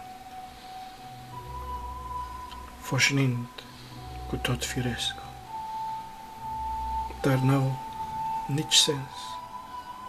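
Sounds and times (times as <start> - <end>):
soft music of held notes: 0.0 - 10.0
deep low note: 1.3 - 8.7.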